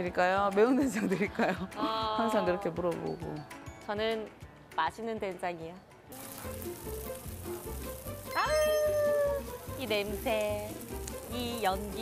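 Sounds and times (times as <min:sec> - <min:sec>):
meat sizzling on grill: 0:06.1 - 0:12.0.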